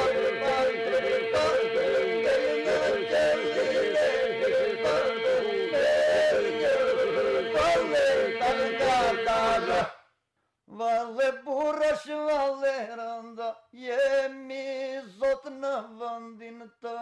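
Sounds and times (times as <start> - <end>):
men singing polyphonic folk song: 0.0 - 9.9.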